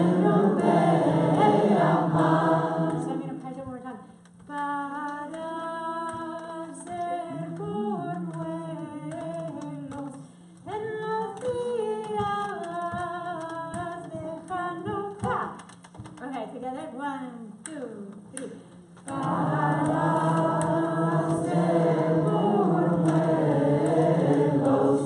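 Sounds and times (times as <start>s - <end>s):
woman singing unaccompanied: 0.0s - 25.0s.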